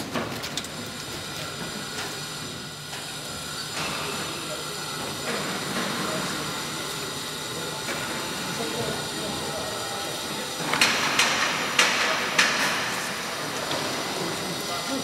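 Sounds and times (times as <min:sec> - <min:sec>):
distant voices of people: 0:03.4 - 0:15.0.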